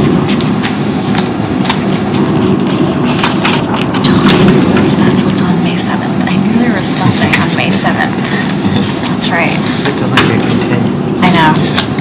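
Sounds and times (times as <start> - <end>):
steady low rumble: 0.0 - 12.0
indistinct low voices: 3.7 - 12.0.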